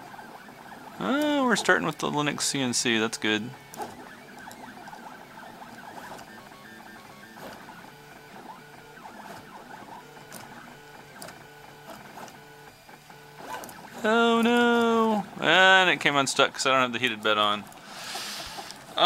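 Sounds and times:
stepper motors whining: 0.0 - 19.0.

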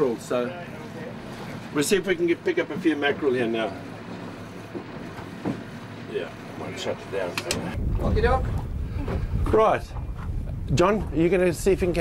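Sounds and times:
boat engine humming: 0.0 - 12.0.

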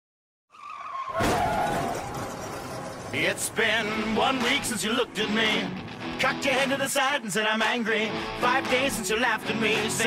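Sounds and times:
loud car crash: 0.6 - 5.0.

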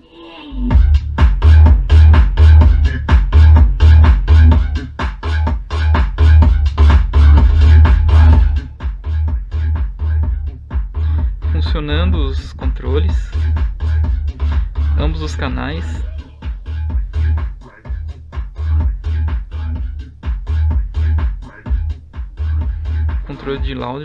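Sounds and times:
bass-heavy electronic dance music: 0.5 - 24.0.

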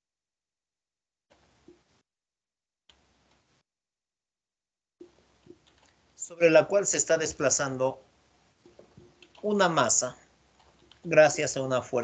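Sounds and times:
faint room hiss: 5.0 - 12.0.

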